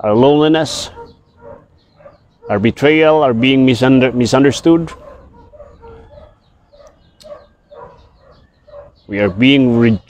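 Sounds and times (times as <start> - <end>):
dog barking faintly: 0.7 - 9.8.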